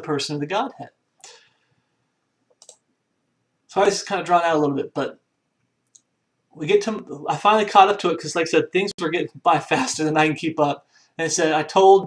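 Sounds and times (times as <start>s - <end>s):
soft breath: 1.2s - 2.1s, 10.8s - 11.2s
computer mouse clicks: 2.5s - 2.9s.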